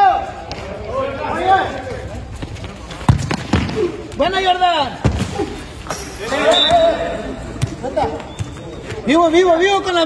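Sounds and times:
football thuds on concrete: 0:03.0 - 0:03.9.

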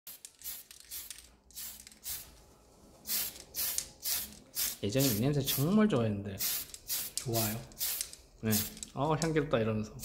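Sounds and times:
aerosol can spraying: 0:00.1 - 0:02.4, 0:03.0 - 0:05.8, 0:06.4 - 0:08.9.

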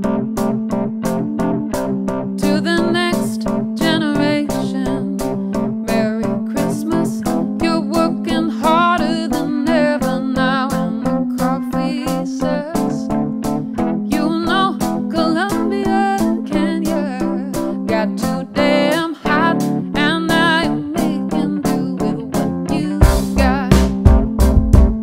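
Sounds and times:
electric guitar: 0:00.0 - 0:25.0
keyboard: 0:00.0 - 0:25.0
upright bass: 0:00.0 - 0:25.0
woman singing with vibrato: 0:02.4 - 0:13.1, 0:14.0 - 0:23.9
drums keeping steady beat: 0:23.0 - 0:25.0.

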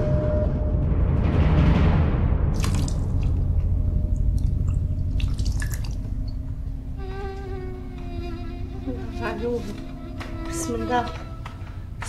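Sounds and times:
low rumbling drone: 0:00.0 - 0:12.0
water dripping into a metal basin: 0:02.5 - 0:06.7.

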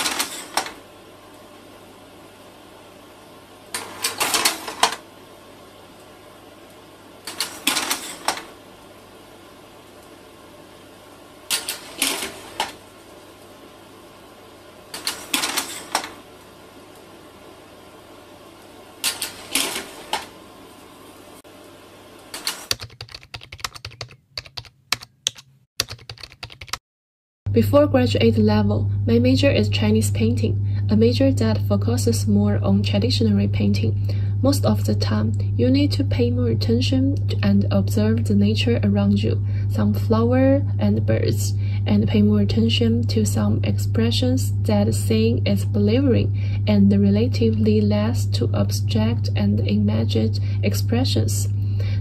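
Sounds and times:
keyboard typing clicks: 0:22.4 - 0:26.8
low hum and hiss: 0:27.5 - 0:52.0.

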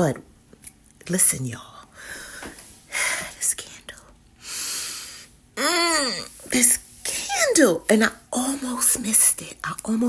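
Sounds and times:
woman whispering: 0:03.1 - 0:04.2
airy breath sound: 0:04.4 - 0:05.4.

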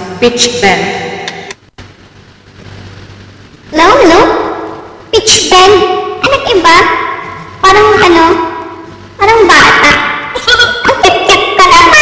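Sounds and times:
faint microphone hiss: 0:00.0 - 0:12.0
person speaking: 0:03.7 - 0:12.0.

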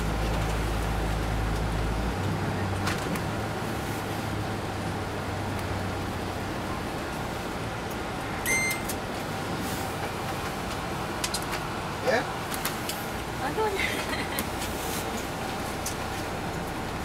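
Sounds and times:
bus engine and road noise: 0:00.0 - 0:17.0.

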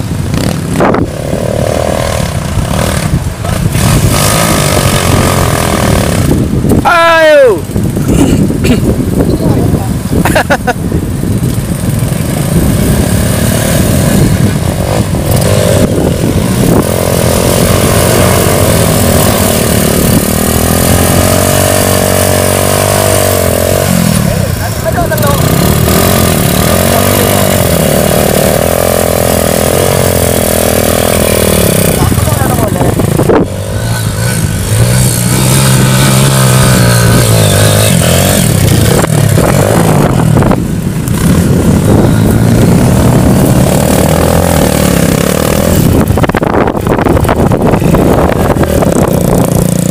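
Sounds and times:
motorcycle engines revving: 0:00.0 - 0:49.9.

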